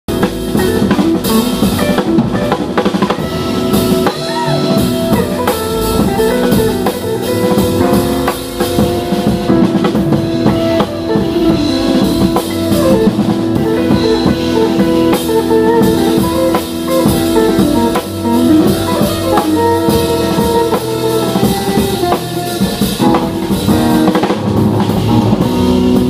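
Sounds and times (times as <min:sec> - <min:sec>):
jazz drum kit played with sticks: 0:00.1 - 0:26.0
sustained band notes: 0:00.1 - 0:26.0.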